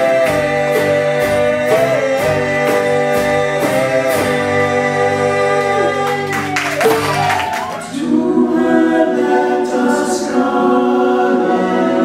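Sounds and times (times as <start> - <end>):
group singing a cappella: 0.0 - 12.0.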